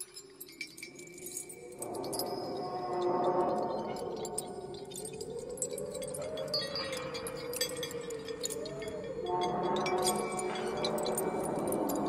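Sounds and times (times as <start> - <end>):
tinkling chimes: 0.0 - 12.0
sustained wavering tones: 1.7 - 12.0.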